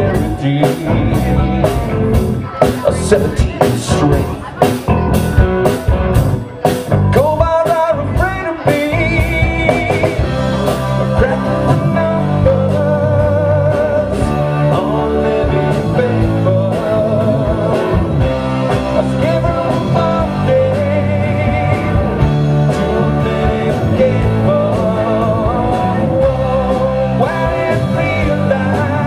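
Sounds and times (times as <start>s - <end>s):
drum kit: 0.0s - 29.0s
electric guitars: 0.0s - 29.0s
keyboard: 0.0s - 29.0s.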